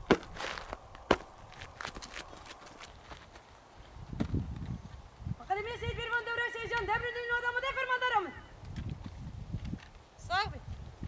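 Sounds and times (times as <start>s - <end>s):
boots stamping on dirt: 0.0s - 5.0s, 8.6s - 10.0s
footsteps on packed dirt: 0.0s - 5.2s, 8.6s - 11.0s.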